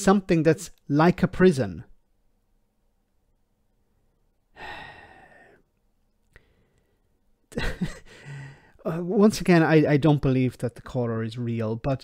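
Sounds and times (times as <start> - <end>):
man sighing: 4.5 - 5.7, 8.0 - 8.8.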